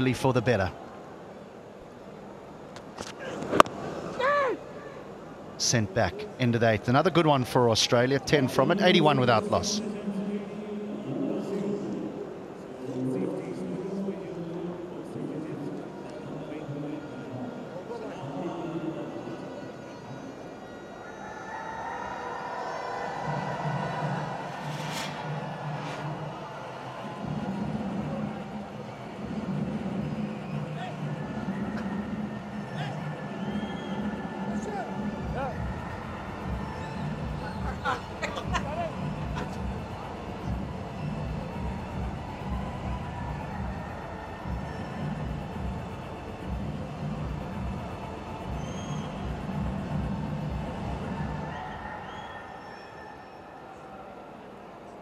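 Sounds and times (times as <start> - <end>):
stadium crowd noise: 0.0 - 55.0
music with steady beat: 34.0 - 51.4.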